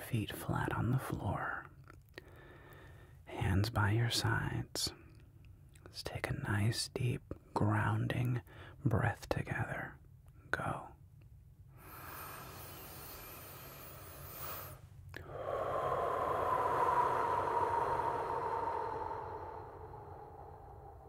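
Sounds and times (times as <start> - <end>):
man breathing deeply: 2.2 - 3.2, 11.7 - 21.0.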